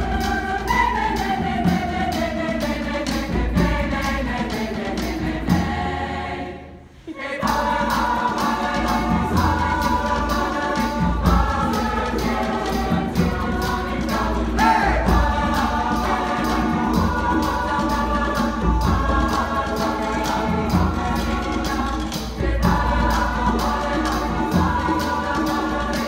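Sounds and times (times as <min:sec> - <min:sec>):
choir singing upbeat song: 0:00.0 - 0:26.0
percussive beat: 0:07.4 - 0:26.0.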